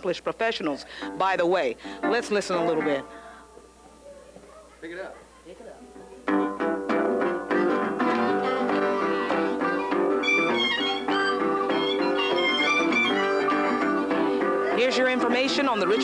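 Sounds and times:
acoustic blues guitar strumming: 0:00.9 - 0:03.5, 0:05.9 - 0:16.0
blues harmonicas: 0:06.3 - 0:16.0.

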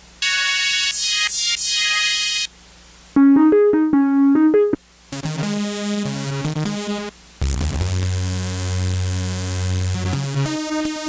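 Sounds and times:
high-pitched synthesizer notes: 0:00.2 - 0:02.5, 0:03.2 - 0:08.1.

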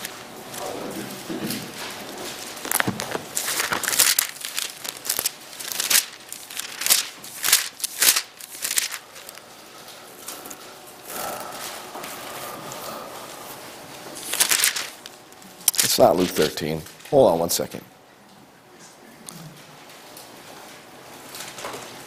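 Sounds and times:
rustling and crackling handling: 0:00.0 - 0:12.4, 0:13.9 - 0:16.9.

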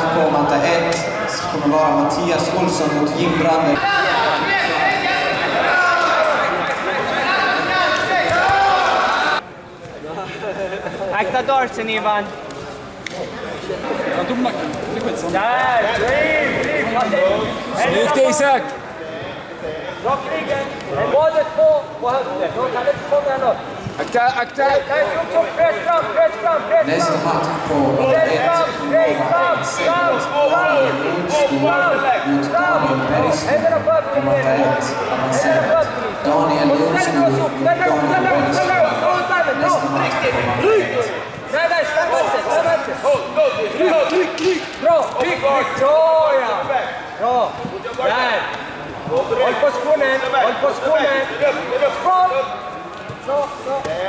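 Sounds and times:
voices talking and calling out: 0:13.0 - 0:54.0.

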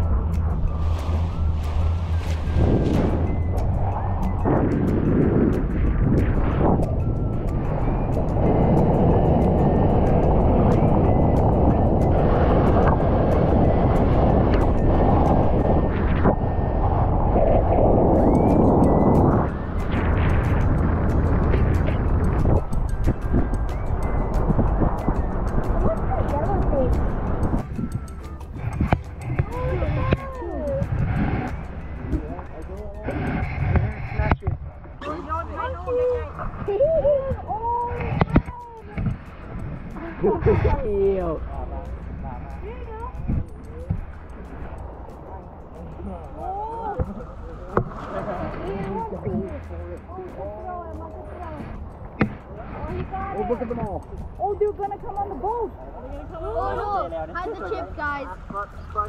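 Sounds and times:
background music: 0:00.0 - 0:59.0
wind and water rushing: 0:00.0 - 0:59.0
voices: 0:18.0 - 0:59.0.

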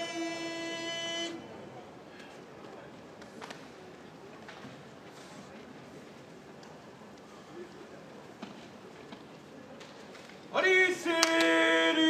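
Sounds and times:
faint hall murmur: 0:00.0 - 0:12.0.

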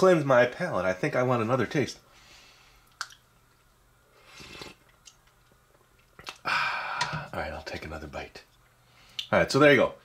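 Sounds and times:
person slurping coffee: 0:04.2 - 0:04.9.

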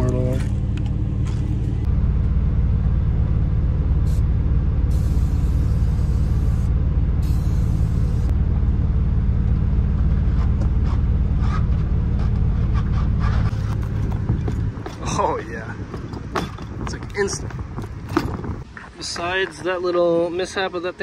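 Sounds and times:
vehicle engine idling: 0:00.0 - 0:19.8
aerosol spray hissing: 0:07.2 - 0:08.3.

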